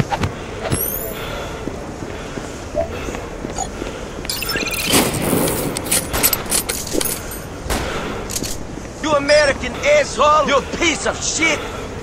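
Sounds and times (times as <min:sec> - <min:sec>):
metallic rifle clicks and rattles: 0:04.9 - 0:07.5, 0:08.3 - 0:08.7.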